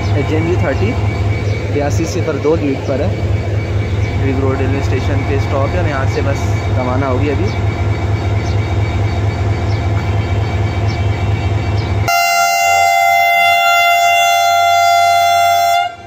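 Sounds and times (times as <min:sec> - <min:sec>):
diesel locomotive idling: 0:00.0 - 0:16.0
train horn blast: 0:12.0 - 0:16.0.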